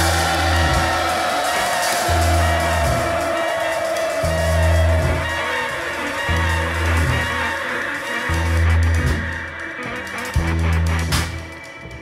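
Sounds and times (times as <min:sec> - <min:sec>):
low bass notes: 0:00.0 - 0:03.4, 0:04.2 - 0:11.5
jazz electronica band playing: 0:00.0 - 0:12.0.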